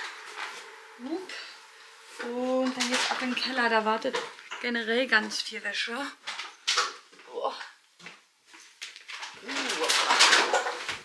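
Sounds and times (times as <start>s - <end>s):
laundry rustling against microphone: 0.0s - 7.4s.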